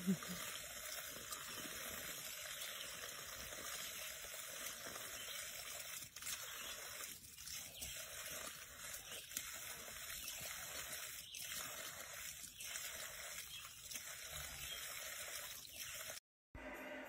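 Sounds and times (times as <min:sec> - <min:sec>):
water trickling onto ground: 0:00.0 - 0:16.2.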